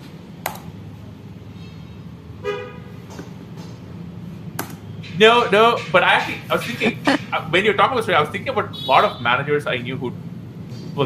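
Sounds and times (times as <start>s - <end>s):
steady low hum: 0.0s - 11.0s
vehicle horn toot: 2.4s - 3.0s, 8.8s - 9.4s.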